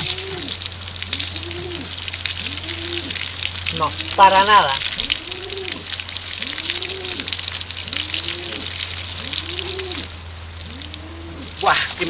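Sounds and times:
bird cooing: 0.0 - 3.3, 5.0 - 12.0
hose water spraying on jacket: 0.0 - 12.0.

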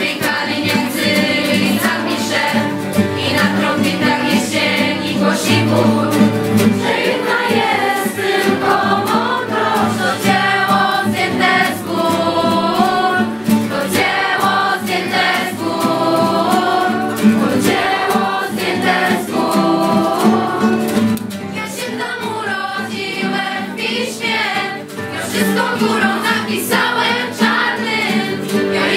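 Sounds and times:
group of young voices singing: 0.0 - 28.9
strummed acoustic guitar: 0.0 - 28.9.

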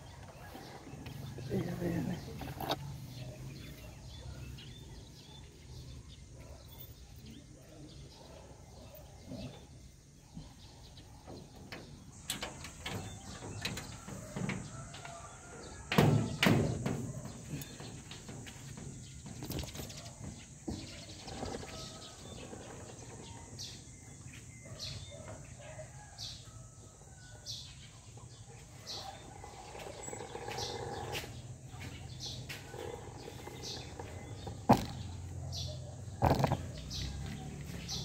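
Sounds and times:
small bird chirping: 29.0 - 38.0.

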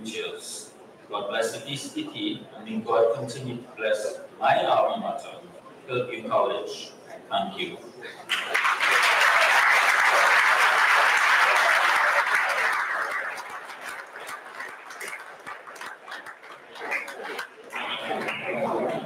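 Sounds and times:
audience applauding: 8.3 - 19.0.

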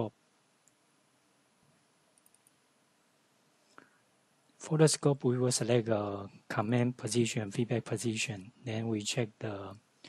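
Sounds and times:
computer mouse clicks: 2.1 - 2.6.

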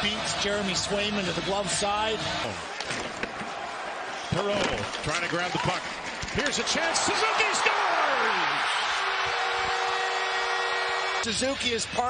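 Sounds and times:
crowd cheering: 0.0 - 12.0
goal horn: 9.0 - 11.4.

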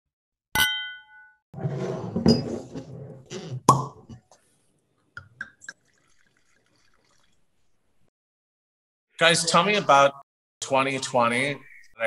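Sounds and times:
sharp ringing clink: 0.6 - 1.4.

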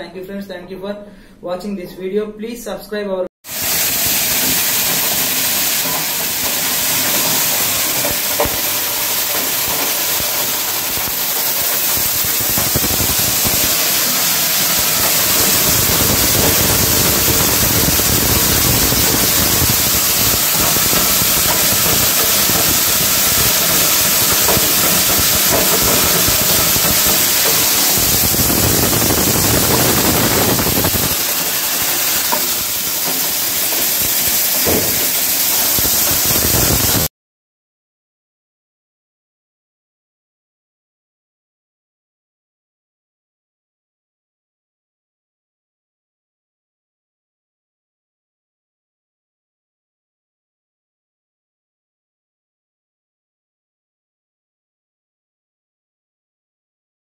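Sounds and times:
processing machinery rushing noise: 3.5 - 37.1
soybeans being poured: 3.5 - 37.1.

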